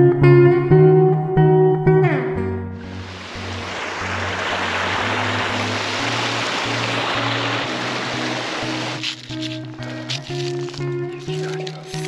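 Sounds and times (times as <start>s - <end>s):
background music of low notes: 0.0s - 12.0s
stream rushing over stones: 2.8s - 10.8s.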